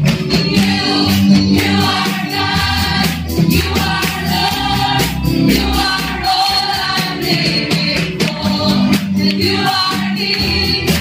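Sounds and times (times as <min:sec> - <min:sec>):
congregation singing: 0:00.0 - 0:11.0
woman singing through microphone: 0:03.5 - 0:11.0.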